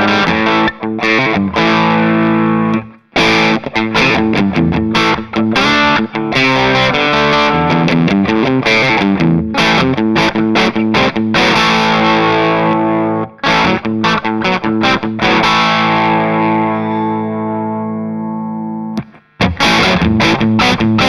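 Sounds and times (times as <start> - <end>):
electric guitar strummed chords: 0.0 - 21.0.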